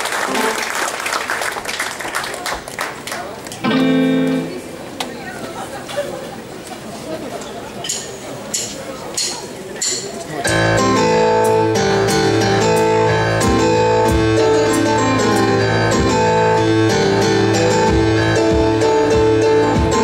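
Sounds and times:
live rock band playing: 3.6s - 4.9s, 10.5s - 20.0s.

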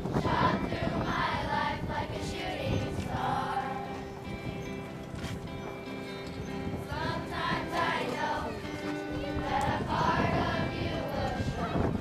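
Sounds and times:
acoustic guitars strumming chords: 0.0s - 12.0s.

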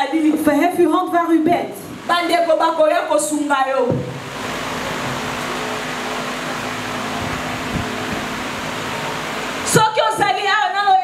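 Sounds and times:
speech: 0.0s - 4.0s, 9.7s - 11.0s
steady loud hiss: 0.0s - 11.0s.

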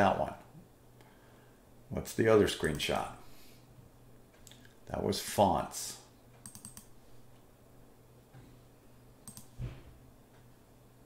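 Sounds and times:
mouse and keyboard clicking: 6.4s - 6.9s, 9.2s - 9.5s
soft low thump: 9.6s - 10.0s.

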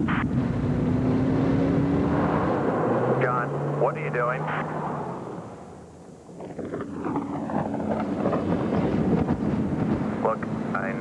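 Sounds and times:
rushing wind and road noise: 0.0s - 11.0s.

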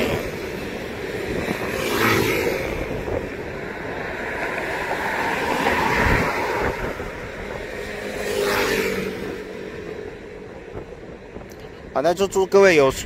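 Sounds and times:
road traffic passing: 0.0s - 13.0s.

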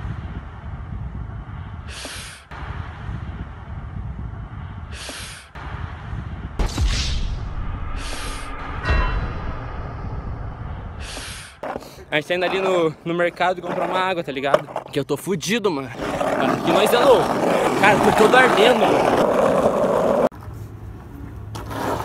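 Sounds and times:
wind rumbling on microphone: 0.0s - 1.9s, 2.5s - 6.6s
loud sudden noise: 5.6s - 11.6s.

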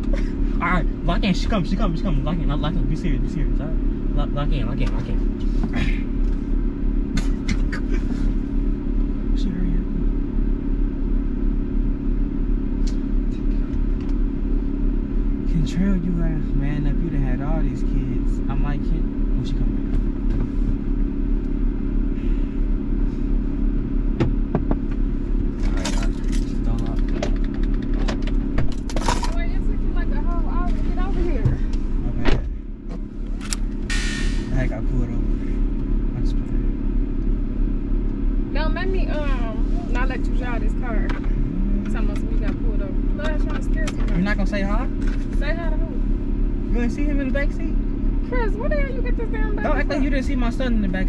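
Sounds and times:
car engine idling: 0.0s - 51.0s.

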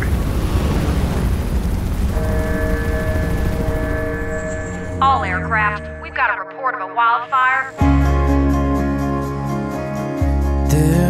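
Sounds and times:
deep fire rumble: 0.0s - 5.4s
aircraft overhead: 0.0s - 6.3s
held musical chord: 2.0s - 11.0s.

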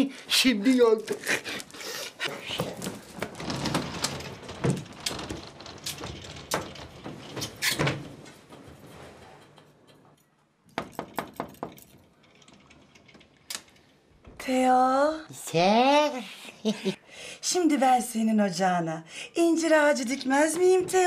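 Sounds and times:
rustling: 0.8s - 10.2s
sliding wardrobe door clicking: 2.6s - 9.9s.

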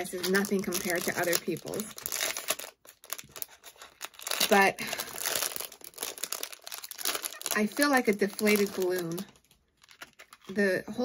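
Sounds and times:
plastic packaging crinkling: 0.0s - 10.7s.

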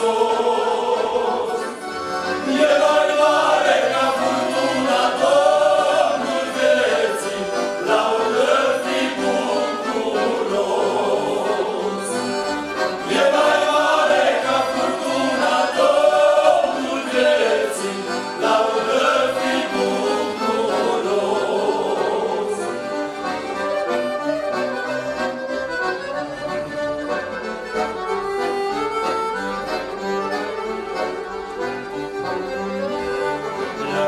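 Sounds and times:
male choir singing a hymn: 0.0s - 22.9s, 33.7s - 34.0s
accordions: 0.0s - 34.0s.

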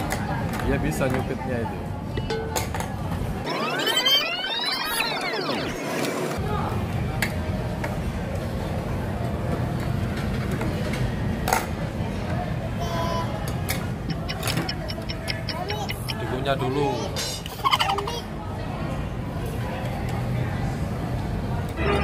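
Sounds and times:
pitched sweeping sound effect: 3.5s - 6.0s.

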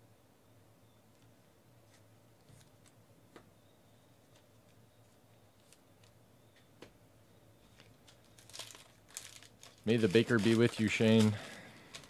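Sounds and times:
foil pack crinkling: 7.7s - 12.0s
man's voice: 9.9s - 11.5s.

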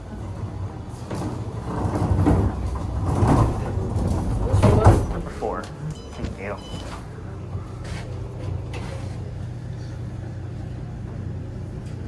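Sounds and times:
elevator doors sliding open: 0.0s - 12.0s
wheeled bin cart rumbling: 0.0s - 12.0s.

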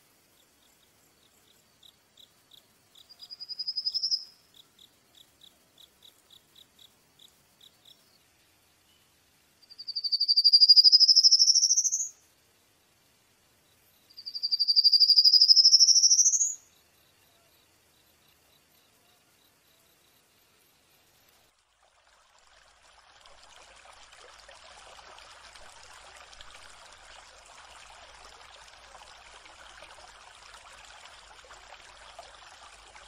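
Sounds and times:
animal chirps: 3.2s - 4.2s, 9.7s - 12.1s, 14.2s - 16.6s.

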